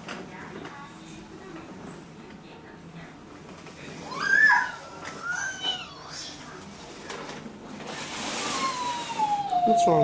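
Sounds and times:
vacuum cleaner running: 7.8 - 10.0.

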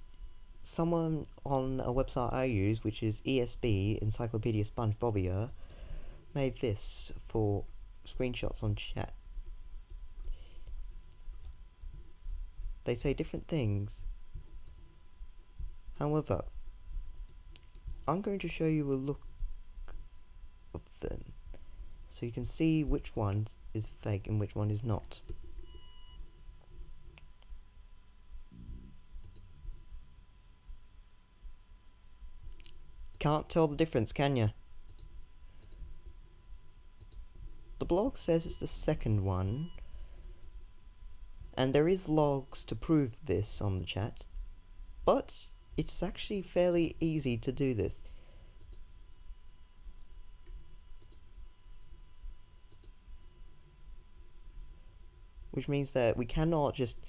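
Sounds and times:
low steady hum: 0.0 - 57.0
computer mouse clicks: 29.2 - 29.5, 34.9 - 35.8, 37.0 - 37.2, 48.6 - 48.8, 50.0 - 51.2, 52.7 - 53.0.

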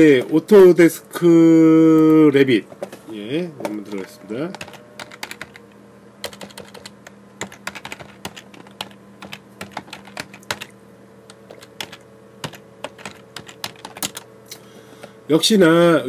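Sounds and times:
faint steady hum: 0.0 - 16.0
typing on computer keyboard: 4.5 - 5.6, 6.2 - 10.7, 11.4 - 14.3.

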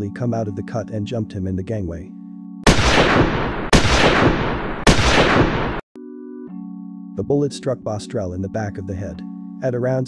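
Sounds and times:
echoing gunshots: 2.6 - 5.8.

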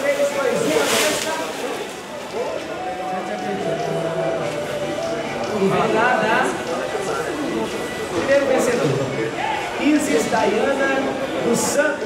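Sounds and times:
paper coupons rustling: 0.0 - 3.6
chatter of voices: 0.0 - 12.0.

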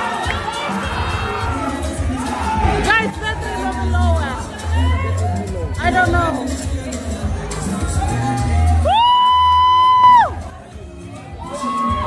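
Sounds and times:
dance music with thudding bass: 0.1 - 12.0.

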